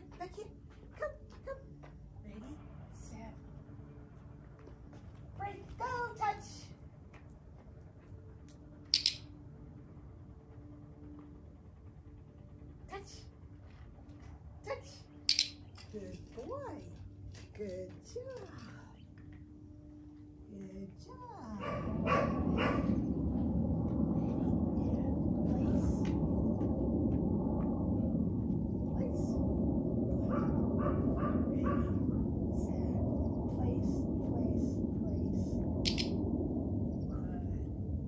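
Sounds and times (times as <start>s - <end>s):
low rumbling noise: 18.0s - 38.0s.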